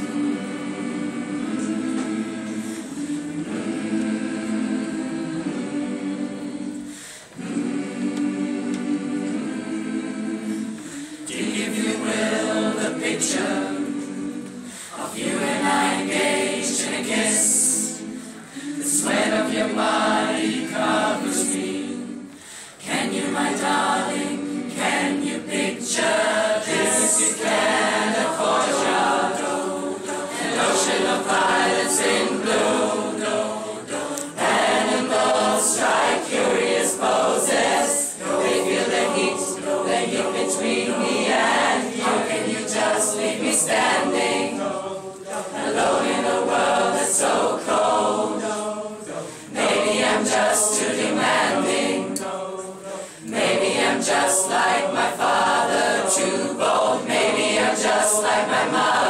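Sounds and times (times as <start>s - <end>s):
mixed choir singing in harmony: 0.0s - 59.0s.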